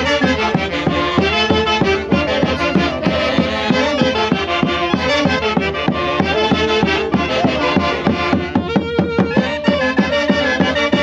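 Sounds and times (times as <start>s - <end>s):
saxophones playing in unison: 0.0s - 11.0s
bass drums beating: 0.2s - 9.7s.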